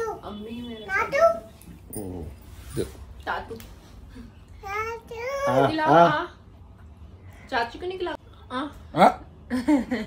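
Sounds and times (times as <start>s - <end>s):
young child's voice: 4.6s - 5.7s.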